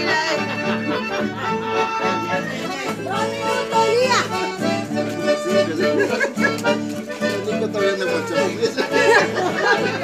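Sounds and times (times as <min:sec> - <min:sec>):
accordion dance music: 0:00.0 - 0:10.0
people talking: 0:00.0 - 0:10.0.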